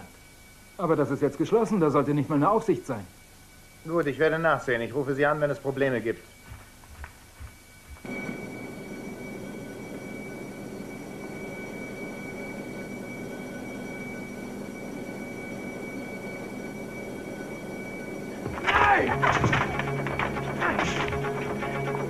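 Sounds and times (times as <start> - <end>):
droning hum of held tones: 0.0 - 22.0.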